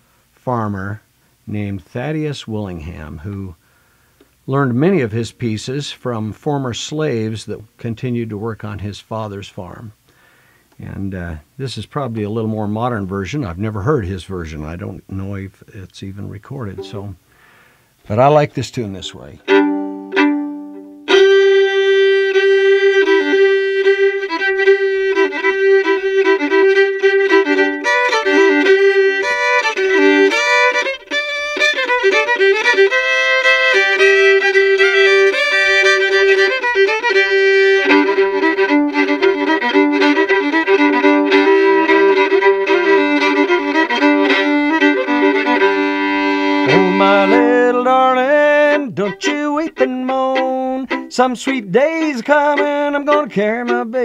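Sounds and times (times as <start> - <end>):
solo fiddle playing old-time tune: 0.5 - 3.6, 4.4 - 54.0.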